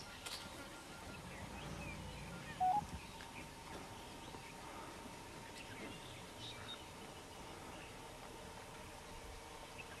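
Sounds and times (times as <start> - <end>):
birds chirping: 0.0 - 10.0
two-note electronic beep: 2.6 - 2.8.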